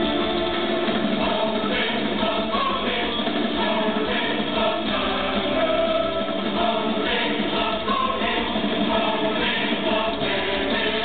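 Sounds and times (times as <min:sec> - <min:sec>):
choir-like massed singing: 0:00.0 - 0:11.0
live metal music over a pa: 0:00.0 - 0:11.0.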